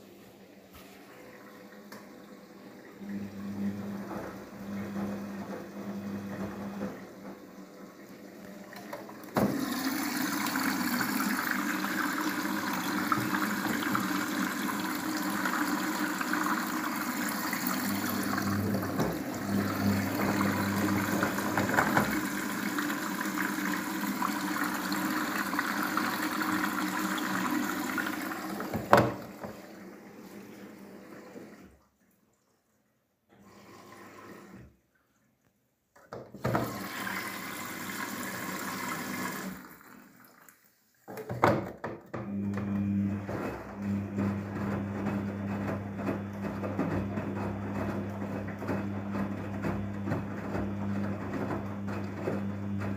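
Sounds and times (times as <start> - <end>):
washing machine water rushing: 0.2 - 31.8, 36.4 - 40.7, 42.2 - 52.9.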